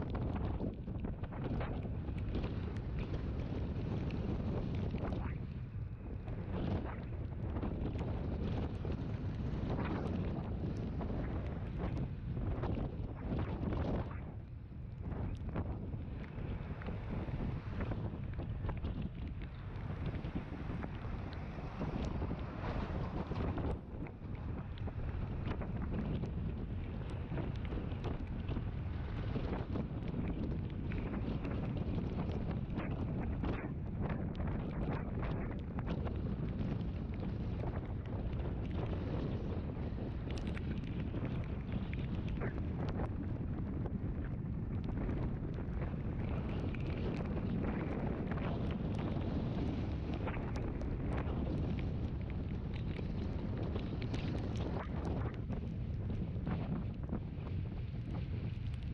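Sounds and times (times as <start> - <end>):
wind buffeting microphone: 0.0 - 58.9
road noise: 19.2 - 25.5.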